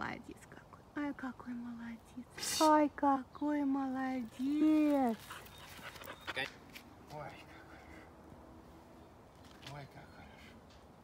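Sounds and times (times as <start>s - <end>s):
puppy panting softly: 5.2s - 6.6s.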